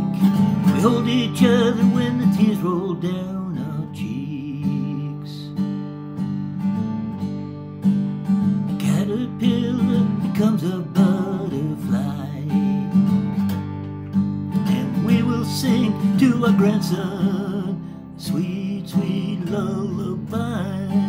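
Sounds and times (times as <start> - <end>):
acoustic guitar strumming chords: 0.0 - 21.0.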